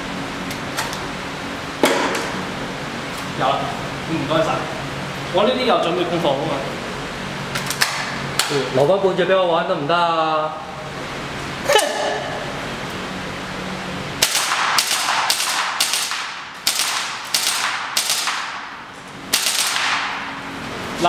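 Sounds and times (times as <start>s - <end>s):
airsoft gun shots: 14.2s - 20.4s.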